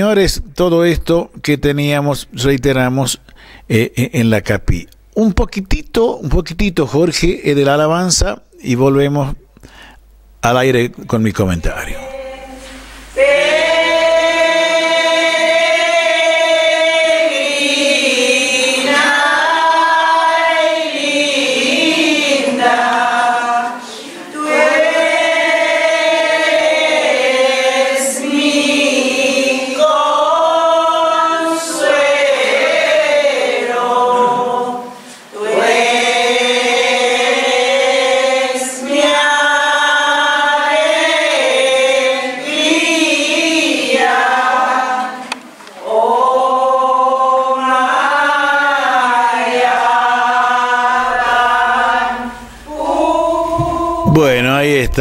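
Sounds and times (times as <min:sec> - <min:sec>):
congregation singing a hymn: 0:11.1 - 0:55.0.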